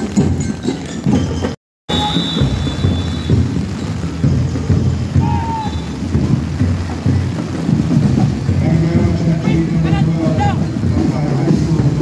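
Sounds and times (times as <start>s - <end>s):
heavy rain pouring: 0.0s - 12.0s.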